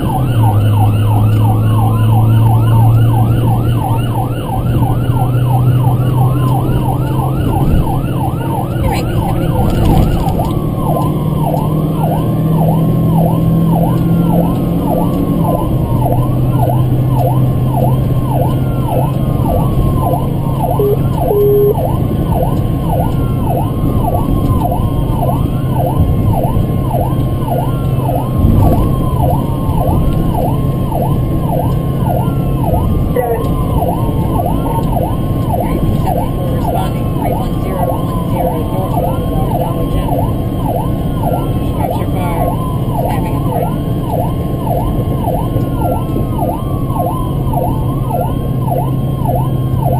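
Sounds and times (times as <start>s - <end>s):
engine and road drone: 0.0s - 49.9s
higher falling siren: 0.0s - 49.9s
siren on fast yelp: 0.0s - 49.9s.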